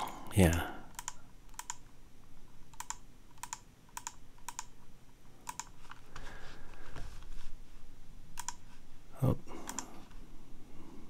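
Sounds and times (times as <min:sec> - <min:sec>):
computer keyboard presses: 0:00.9 - 0:01.8, 0:02.8 - 0:04.7, 0:05.5 - 0:05.7, 0:08.4 - 0:08.6.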